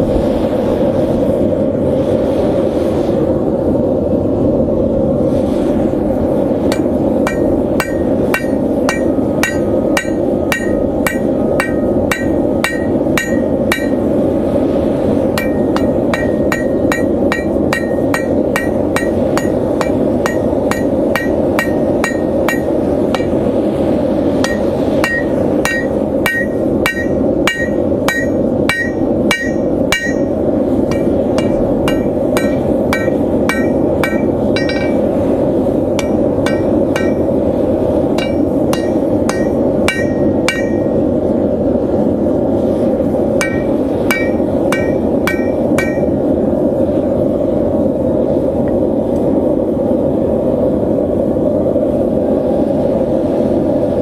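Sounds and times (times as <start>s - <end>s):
hammer blows on anvil: 6.7s - 14.1s, 15.4s - 23.4s, 24.4s - 35.1s, 36.0s - 37.3s, 38.2s - 41.0s, 43.4s - 46.2s.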